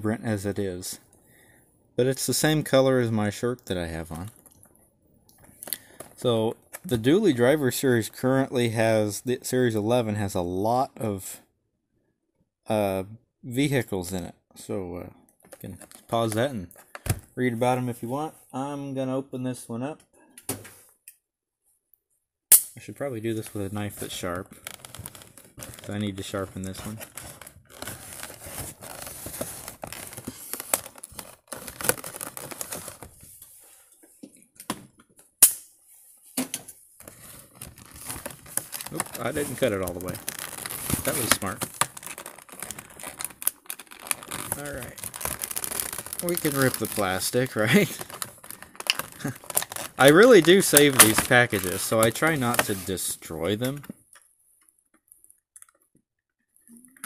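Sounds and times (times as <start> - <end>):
plastic crackling: 15.4 - 17.3, 23.4 - 33.2, 37.0 - 54.2
knife cutting plastic packaging: 37.6 - 52.9.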